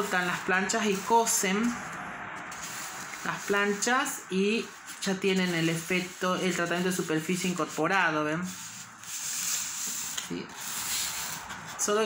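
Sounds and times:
tray scraping on table: 8.4 - 11.9.

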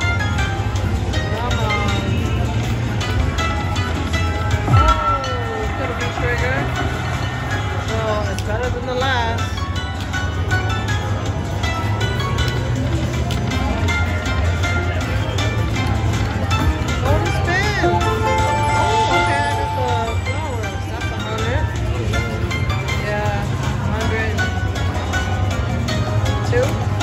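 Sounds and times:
slot machine bonus music: 0.0 - 23.4
low hum: 4.5 - 8.1
slot machine chiming notes: 16.4 - 23.4.

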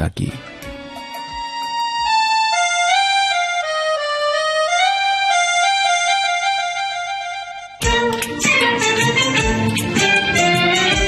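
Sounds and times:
instrumental melody in held notes: 0.4 - 11.0.

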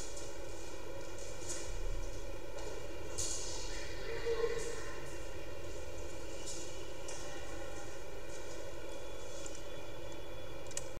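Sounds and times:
faint constant hum: 0.0 - 11.0.

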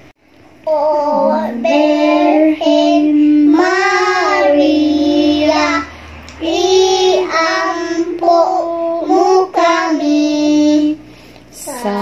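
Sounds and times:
children singing slow song: 0.6 - 12.0.

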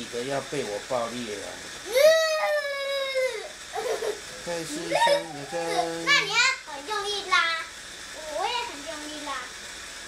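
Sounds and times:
child yelling: 1.9 - 3.5.

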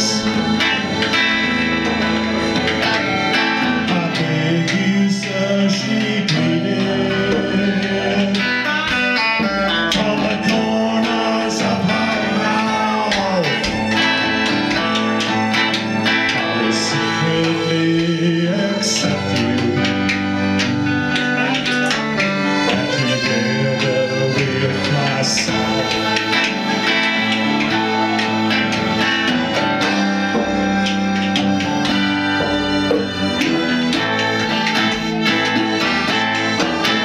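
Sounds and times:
djembe drumming: 0.0 - 4.8, 19.1 - 37.0
accordion: 0.0 - 37.0
electric guitar: 0.0 - 37.0.

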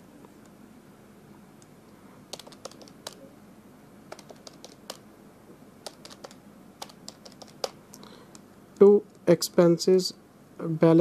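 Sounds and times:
calculator keys clicking: 2.3 - 3.2, 4.1 - 5.0, 5.8 - 7.8.

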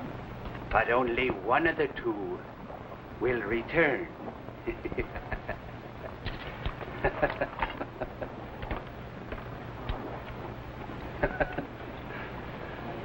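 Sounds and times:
steady low hum: 0.0 - 13.0
man chuckling: 7.0 - 8.4, 11.2 - 11.8.

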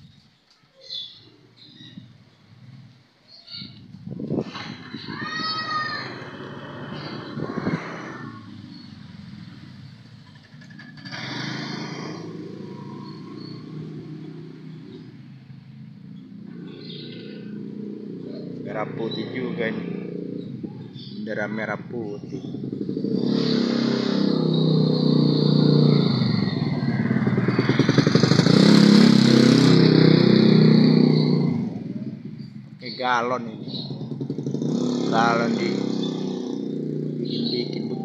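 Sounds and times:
engine droning: 3.7 - 38.0.

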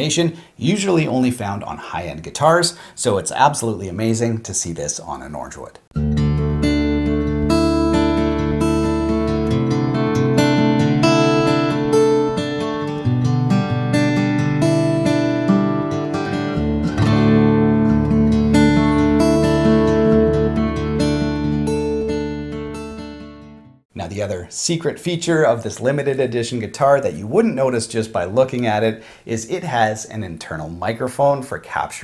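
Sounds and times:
fingerstyle acoustic guitar: 6.0 - 23.7.

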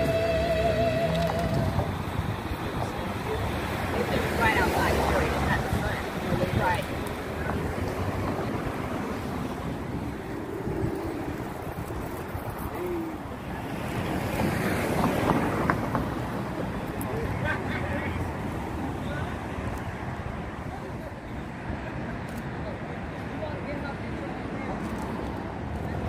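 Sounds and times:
wind buffeting microphone: 0.0 - 17.5.

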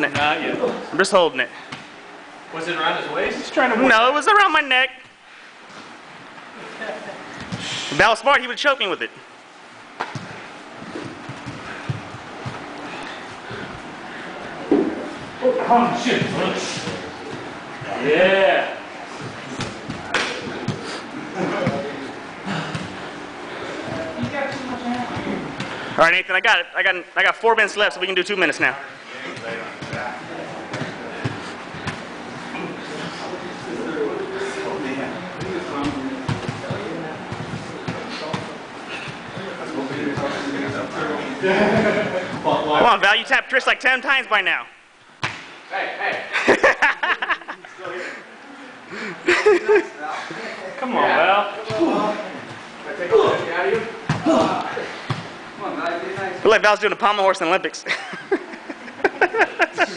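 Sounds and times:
bodies scuffling on a mat: 9.9 - 26.0, 29.1 - 42.8
people talking: 20.0 - 22.9, 23.8 - 31.6, 32.5 - 44.7, 45.7 - 55.0, 55.6 - 57.9.

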